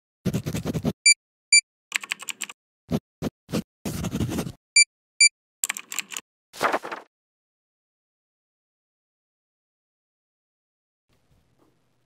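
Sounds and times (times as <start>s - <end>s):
keystroke clatter: 1.9s - 2.6s, 5.6s - 6.2s.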